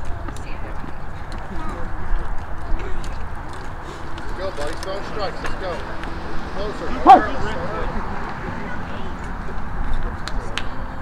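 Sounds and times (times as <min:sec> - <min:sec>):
indistinct voices: 0:05.1 - 0:10.2
short pitched cry: 0:07.0 - 0:07.3.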